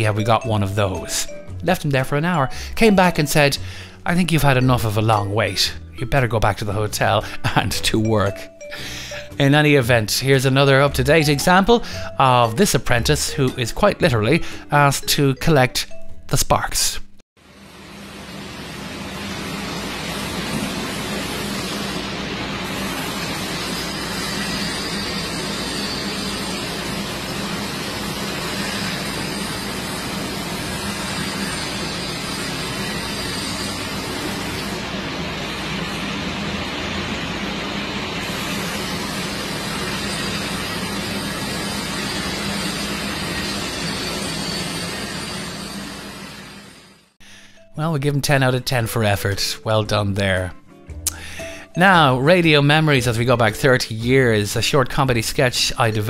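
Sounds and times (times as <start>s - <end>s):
angle grinder cutting steel: 19.2s - 47.1s.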